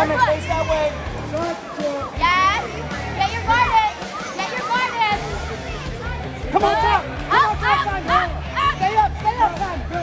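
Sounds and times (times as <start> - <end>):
busy hall noise: 0.0 - 10.0.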